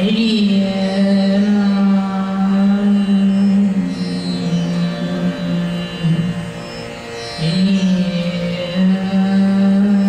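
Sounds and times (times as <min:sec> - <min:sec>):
woman singing long low note: 0:00.0 - 0:06.4, 0:07.4 - 0:10.0
tanpura drone: 0:00.0 - 0:10.0.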